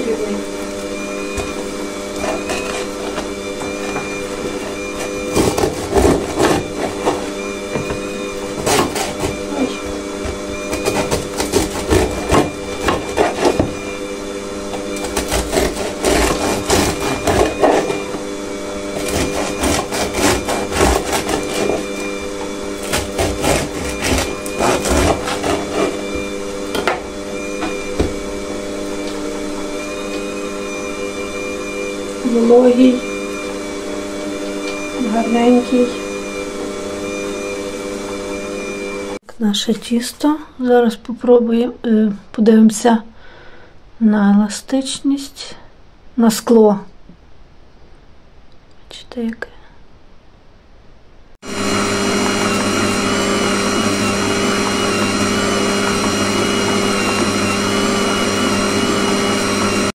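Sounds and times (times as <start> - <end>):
electric mixer motor hum: 0.0 - 39.2, 51.4 - 59.9
bread knife sawing crusty loaf: 2.2 - 28.7.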